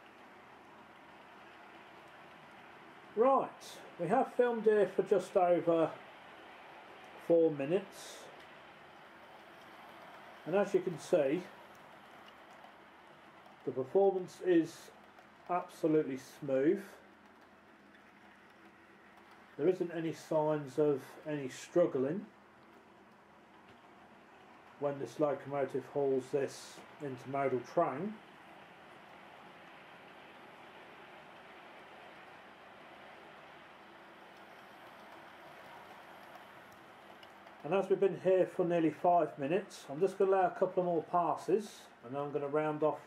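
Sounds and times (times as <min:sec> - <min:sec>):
model train running on track: 0:00.0 - 0:43.0.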